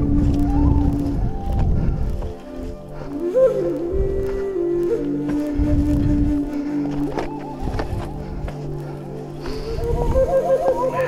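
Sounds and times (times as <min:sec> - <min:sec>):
low rumble: 0:00.0 - 0:02.4
flute playing: 0:00.0 - 0:11.0.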